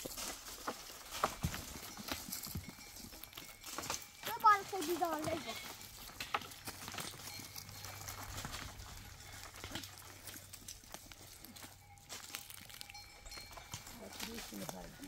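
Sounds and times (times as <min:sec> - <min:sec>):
footsteps on rocky ground: 0:00.0 - 0:15.0.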